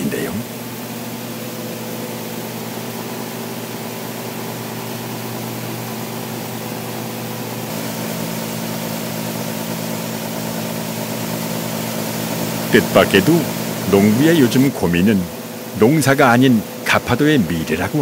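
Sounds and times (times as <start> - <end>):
grain dryer motor and fan hum: 0.0 - 18.0.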